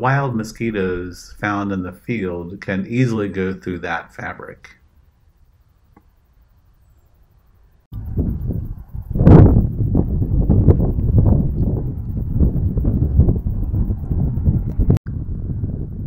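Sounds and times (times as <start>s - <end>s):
wind buffeting microphone: 7.9s - 16.0s.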